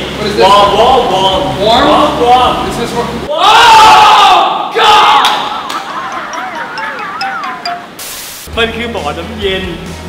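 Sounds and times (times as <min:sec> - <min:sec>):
men shouting and laughing: 0:03.4 - 0:07.6
wavering wobbling tone: 0:05.8 - 0:08.5.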